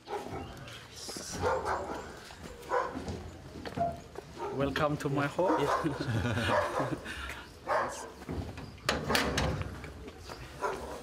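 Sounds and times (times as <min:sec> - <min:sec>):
dog barking: 0:00.0 - 0:00.6, 0:01.3 - 0:03.1, 0:04.4 - 0:04.8, 0:05.4 - 0:07.0, 0:07.7 - 0:08.2, 0:10.6 - 0:11.0.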